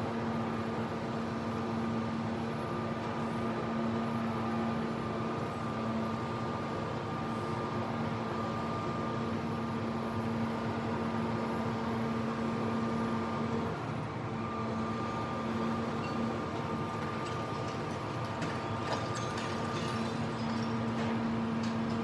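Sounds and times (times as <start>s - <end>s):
excavator engine hum and whine: 0.0s - 22.0s.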